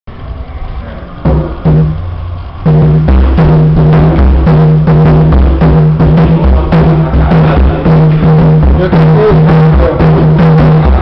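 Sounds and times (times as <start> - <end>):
hand drum strokes: 1.3 - 11.0.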